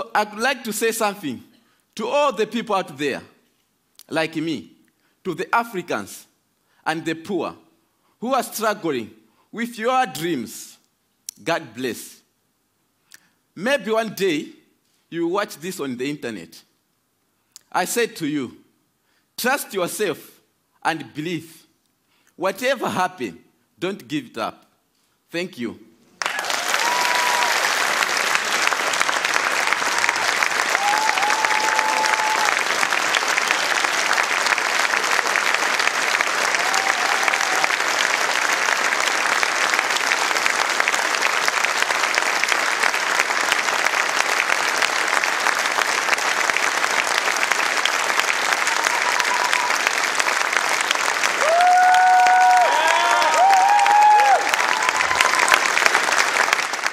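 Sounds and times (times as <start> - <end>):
whoops and cheers: 26.2 - 27.9, 29.8 - 32.9, 36.4 - 38.0, 48.4 - 50.0, 51.4 - 55.8
audience applauding: 26.2 - 56.9.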